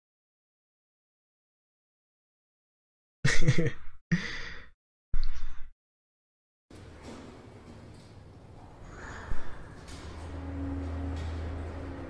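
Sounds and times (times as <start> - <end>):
man laughing softly: 3.3 - 4.4.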